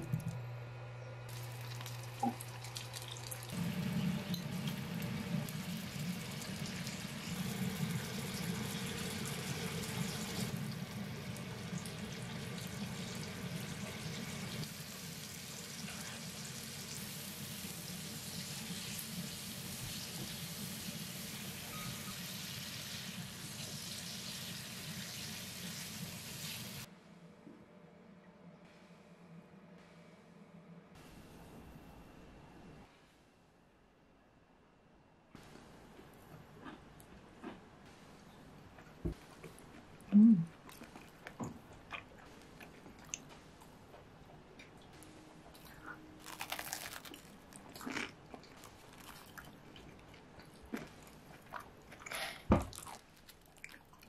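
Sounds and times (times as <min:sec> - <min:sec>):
food sizzling in frying pan: 0:02.7 - 0:26.9.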